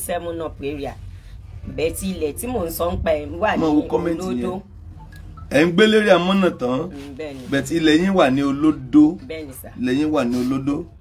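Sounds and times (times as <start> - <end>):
woman talking: 0.0 - 4.7, 7.0 - 7.6, 9.2 - 9.8.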